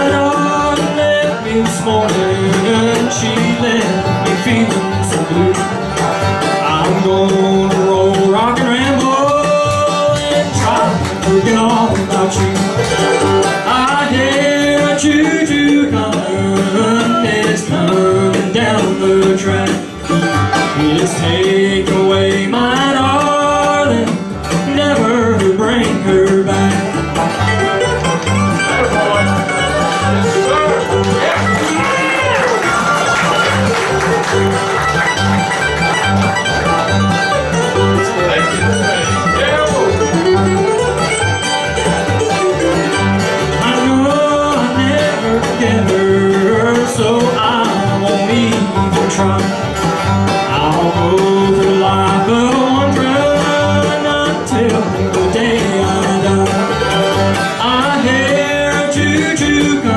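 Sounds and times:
bluegrass string band: 0.0 - 59.9.

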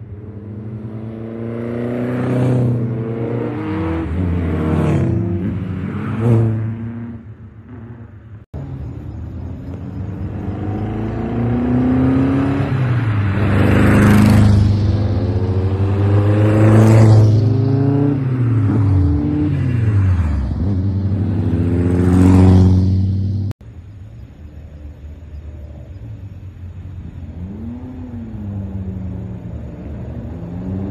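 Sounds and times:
sports cars driving past: 0.0 - 23.6, 25.4 - 30.9.

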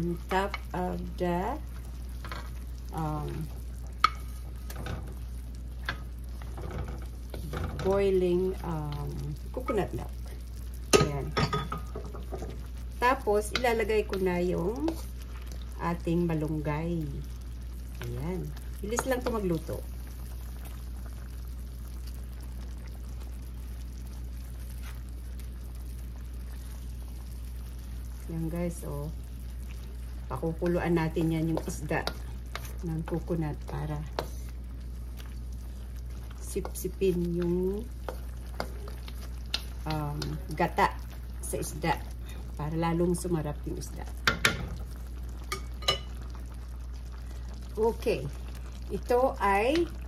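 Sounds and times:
liquid simmering at a boil: 0.0 - 50.0
steady low hum: 0.0 - 50.0
coconut milk bubbling in a wok: 0.1 - 42.6, 44.0 - 50.0
spatula pushing fish in pan: 3.5 - 8.0, 30.4 - 41.4, 45.4 - 46.2.

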